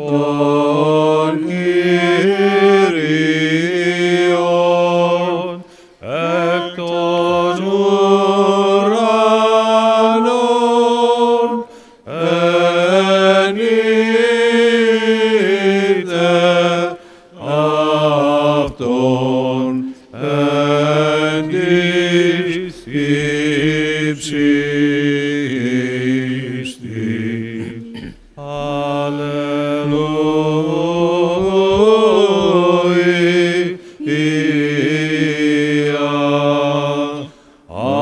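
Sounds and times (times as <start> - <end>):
church chant singing: 0.0 - 38.0.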